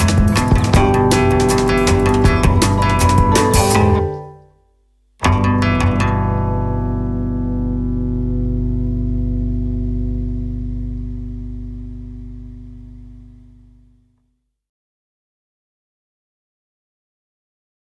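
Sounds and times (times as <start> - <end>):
electric guitar chord ringing: 0.0 - 4.5, 5.2 - 14.0.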